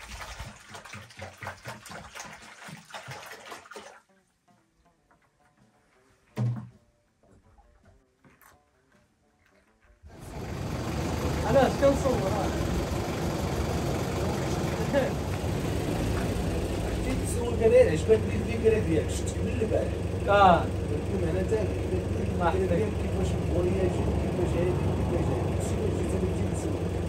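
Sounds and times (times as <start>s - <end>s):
car engine idling: 10.1s - 27.0s.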